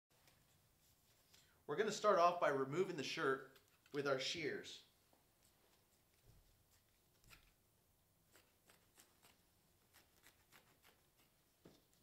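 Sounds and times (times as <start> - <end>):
shears snipping fabric: 8.3 - 11.4.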